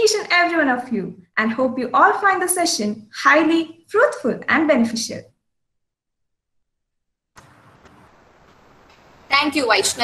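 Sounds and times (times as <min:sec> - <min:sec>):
faint microphone hiss: 0:07.4 - 0:10.0.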